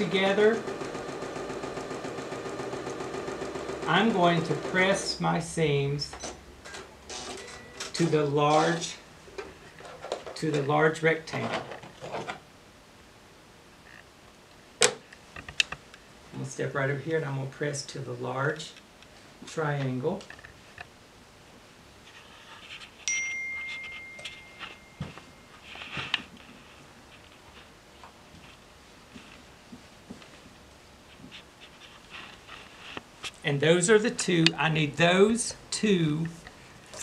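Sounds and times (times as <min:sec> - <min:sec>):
bright ringing ding: 0:23.0 - 0:25.6
fabric rustle: 0:23.7 - 0:33.4.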